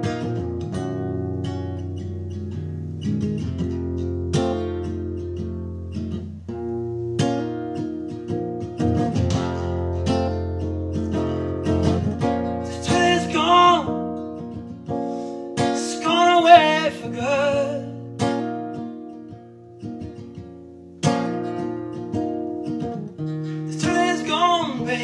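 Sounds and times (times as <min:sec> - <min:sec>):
acoustic blues guitar: 0:00.0 - 0:25.0.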